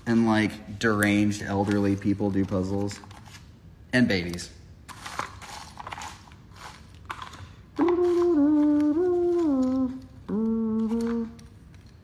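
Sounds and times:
man humming: 7.8 - 11.5.

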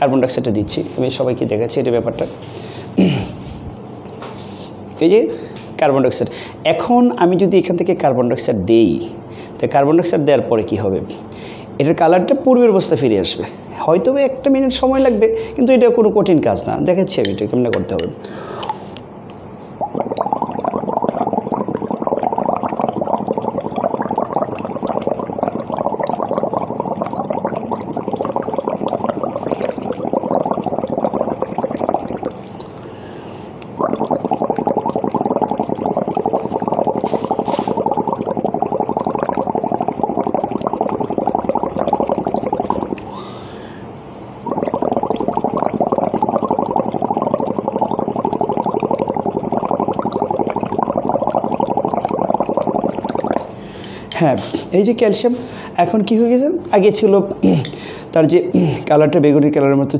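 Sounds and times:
breath bubbling through liquid: 2.3 - 3.8, 17.2 - 54.8, 57.4 - 58.9.

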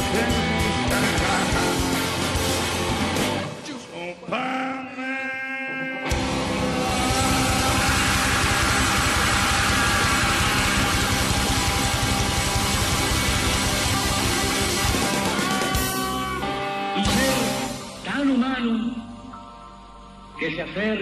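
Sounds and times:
rock music with distorted guitars: 0.0 - 5.0, 5.7 - 20.9
rising tones: 6.1 - 18.0.

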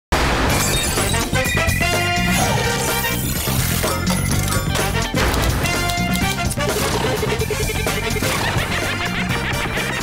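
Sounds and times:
theme music: 0.2 - 10.0.

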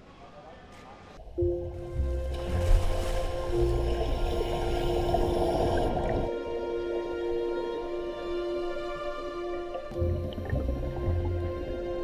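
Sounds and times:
music with long held tones: 1.3 - 12.0
underwater air bubbles rushing: 2.0 - 6.4, 9.7 - 12.0.

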